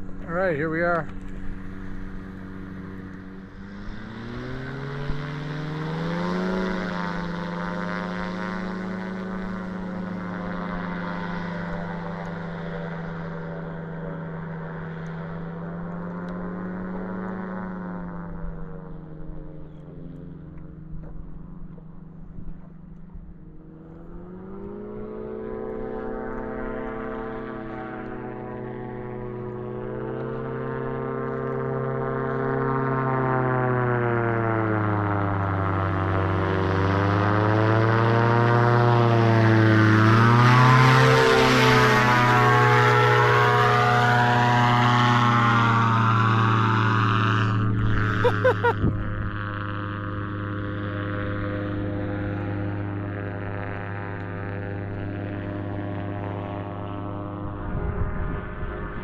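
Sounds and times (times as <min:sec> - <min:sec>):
propeller plane flying past: 0:00.0 - 0:59.0.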